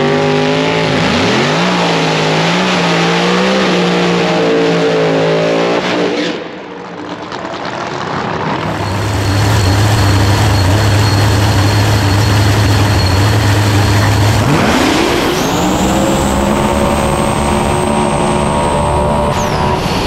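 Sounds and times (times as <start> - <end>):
racing car engine revving: 0.0 - 6.7, 8.6 - 20.0
high whine: 8.6 - 20.0.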